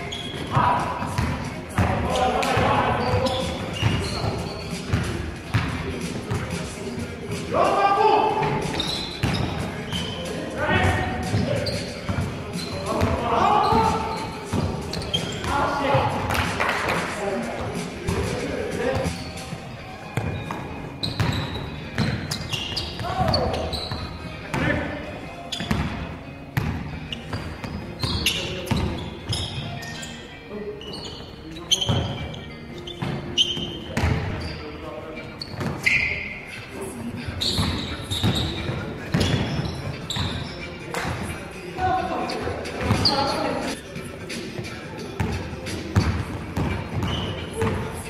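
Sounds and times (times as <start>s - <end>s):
basketball bouncing on gym floor: 0.4s - 4.1s, 34.0s - 34.5s, 46.0s - 47.9s.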